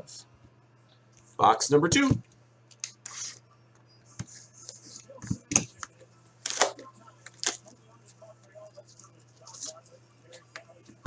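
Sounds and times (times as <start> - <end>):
box cutter slicing plastic wrap: 6.4 - 6.8
plastic wrap tearing: 6.4 - 7.7.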